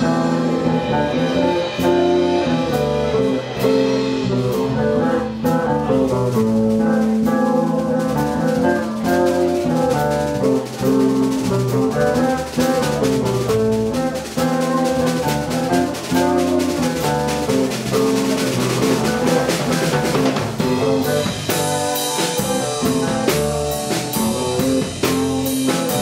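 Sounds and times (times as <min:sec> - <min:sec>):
bass guitar: 0:00.0 - 0:26.0
drum kit with cymbals: 0:00.0 - 0:26.0
electric guitar: 0:00.0 - 0:26.0.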